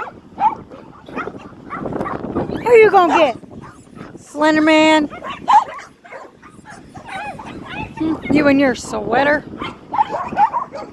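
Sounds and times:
dog yipping: 0.0s - 4.2s, 5.1s - 8.5s, 9.6s - 10.9s.

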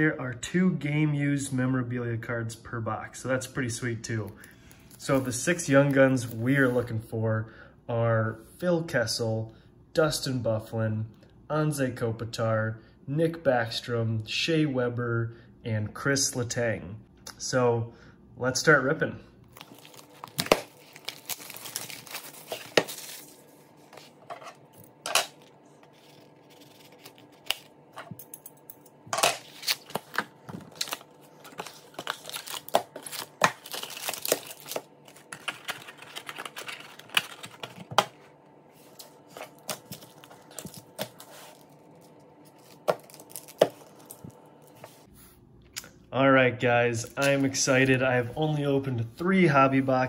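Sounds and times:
plastic wrap crinkling: 19.5s - 24.2s, 29.5s - 37.9s, 39.2s - 44.7s
card packs handled: 19.5s - 28.2s, 29.2s - 45.1s.

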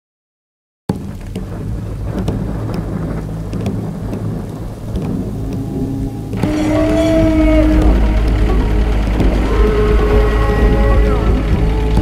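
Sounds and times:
low steady rumble: 0.9s - 12.0s
scattered crackles: 0.9s - 12.0s.

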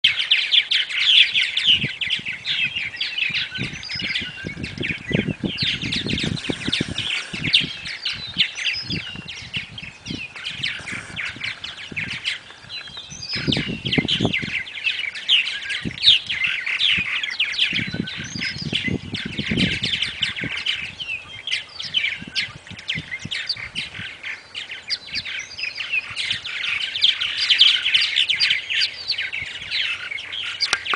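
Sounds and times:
birds chirping and chattering: 0.0s - 30.9s.

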